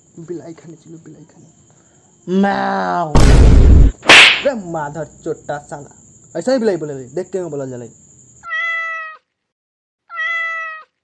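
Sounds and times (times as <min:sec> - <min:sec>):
cat meowing: 0:08.4 - 0:09.3, 0:10.1 - 0:11.0.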